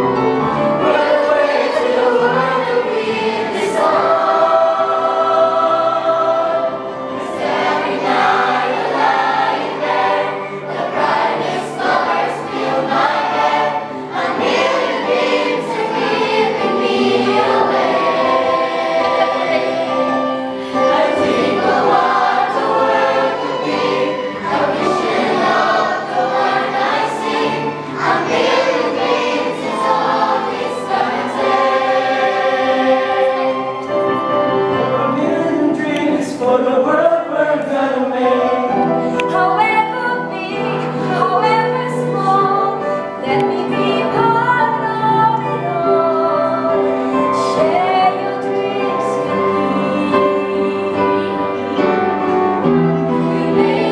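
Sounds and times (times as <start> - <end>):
choir of adults and children singing: 0.0 - 53.9.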